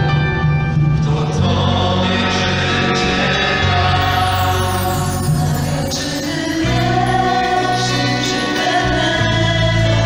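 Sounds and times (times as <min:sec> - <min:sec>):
vocal group singing in harmony: 0:00.8 - 0:10.0
live band playing: 0:02.4 - 0:10.0.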